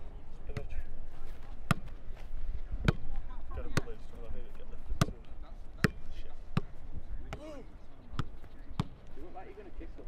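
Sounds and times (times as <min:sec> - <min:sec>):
football being kicked: 0:01.6 - 0:02.0, 0:02.8 - 0:04.1, 0:04.9 - 0:09.0.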